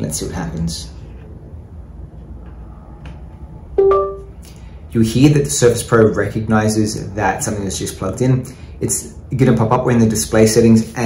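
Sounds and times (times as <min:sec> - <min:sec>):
computer device-connected chime: 0:03.8 - 0:04.3.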